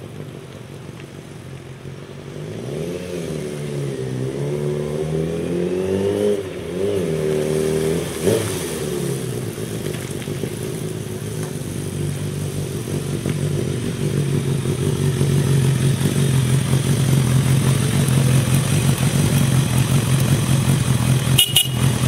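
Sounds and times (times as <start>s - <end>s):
motorcycle engine: 2.3s - 22.0s.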